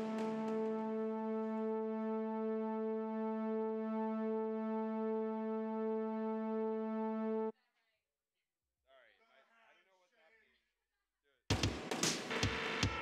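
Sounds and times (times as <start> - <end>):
pulsing held synthesizer note: 0.0 - 7.5.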